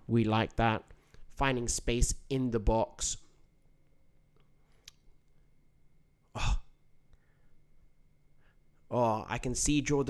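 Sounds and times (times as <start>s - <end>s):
faint steady high tone: 0.0s - 10.0s
man sighing: 6.3s - 7.3s.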